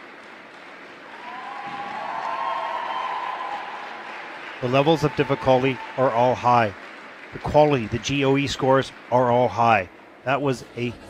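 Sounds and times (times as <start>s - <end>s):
audience applauding: 0.0s - 10.2s
cheering: 1.0s - 9.5s.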